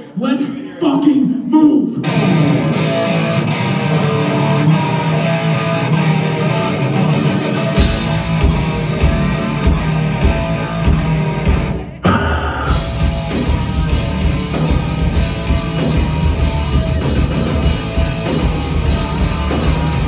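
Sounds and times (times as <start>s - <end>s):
electric guitar ringing: 2.0s - 20.0s
drums and bass: 2.2s - 20.0s.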